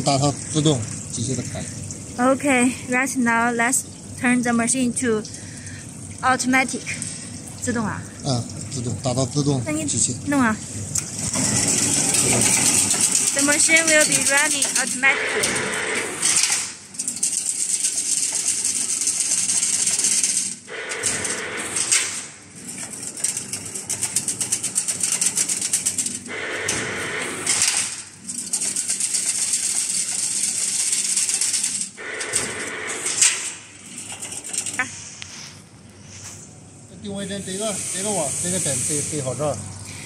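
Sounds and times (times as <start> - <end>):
fence weaving machine rattling: 11.2 - 26.3, 27.1 - 34.8.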